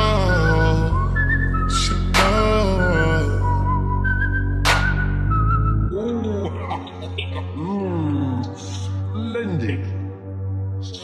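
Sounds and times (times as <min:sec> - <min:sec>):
whistled melody: 0:00.0 - 0:07.0
low bass: 0:00.0 - 0:11.0
slowed hip-hop track: 0:00.0 - 0:11.0
gliding vocal sounds: 0:05.9 - 0:09.9.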